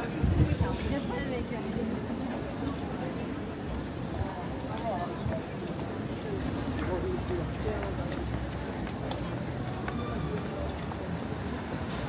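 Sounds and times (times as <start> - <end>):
hubbub of voices: 0.0 - 12.0
low street rumble: 0.0 - 12.0
footsteps on wet stone pavement: 3.3 - 11.7.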